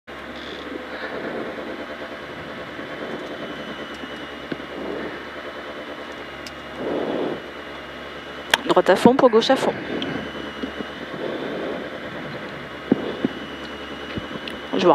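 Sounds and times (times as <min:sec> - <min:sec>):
rally car engine idling: 0:00.1 - 0:14.9.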